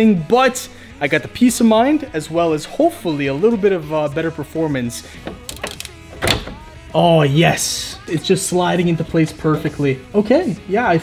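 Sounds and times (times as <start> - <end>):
clicks: 5.2 - 6.6.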